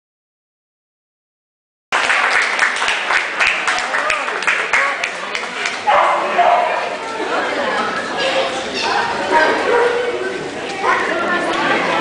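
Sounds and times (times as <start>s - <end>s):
people talking: 2.1s - 12.0s.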